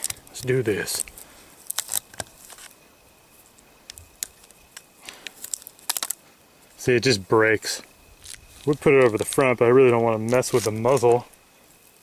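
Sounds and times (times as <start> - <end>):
latex rubber crinkling and snapping: 0.0 - 2.8, 3.4 - 6.8, 8.0 - 12.0.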